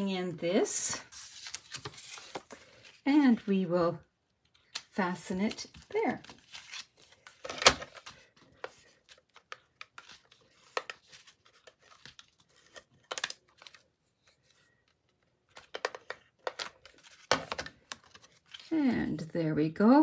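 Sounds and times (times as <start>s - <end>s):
paper rustling: 0.9s - 3.0s, 5.3s - 14.7s.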